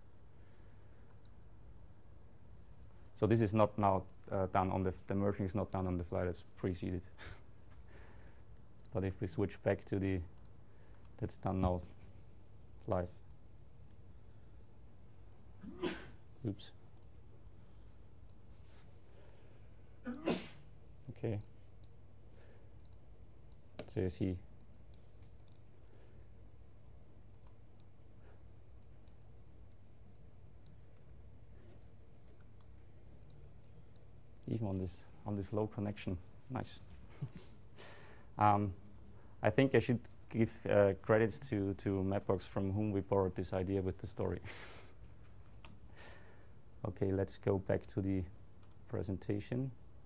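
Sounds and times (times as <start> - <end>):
low room hum: 0.0 - 50.0
computer mouse clicks: 8.8 - 9.0, 17.0 - 17.6, 21.0 - 22.0, 22.7 - 24.0, 24.6 - 26.2, 27.3 - 28.0, 28.7 - 29.2, 31.7 - 34.1, 48.6 - 48.9.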